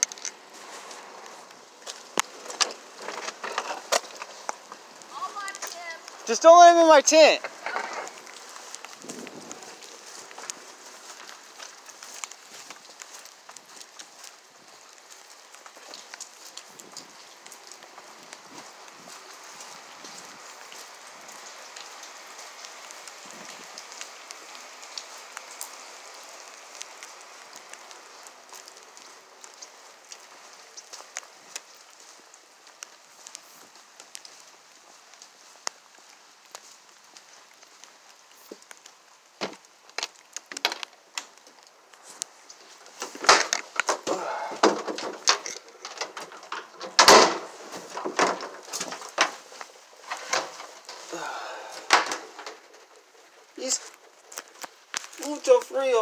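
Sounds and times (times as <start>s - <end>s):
light rain hissing: 0.0s - 56.0s.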